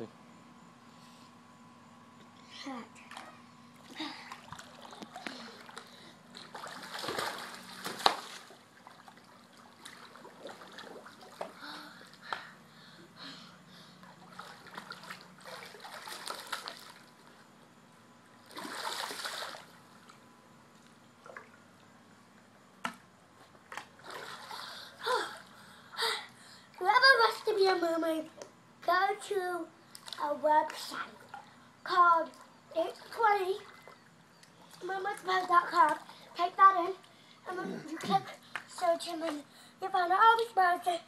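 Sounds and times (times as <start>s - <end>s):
pool water splashing: 3.0s - 12.6s, 14.1s - 17.6s, 18.4s - 20.3s, 21.0s - 25.6s, 29.9s - 39.5s.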